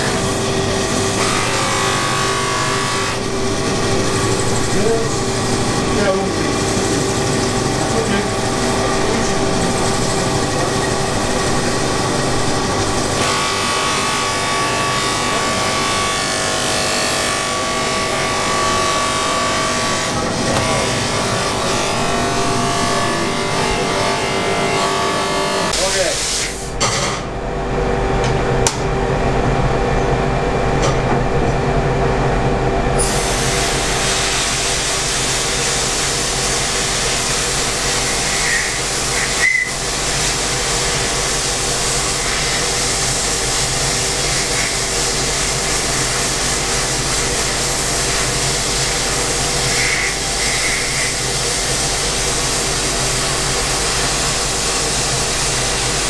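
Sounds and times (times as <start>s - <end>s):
electric buffing motor running: 0.0s - 25.8s
sandblasting cabinet humming: 0.0s - 56.0s
blast nozzle hissing: 33.0s - 56.0s.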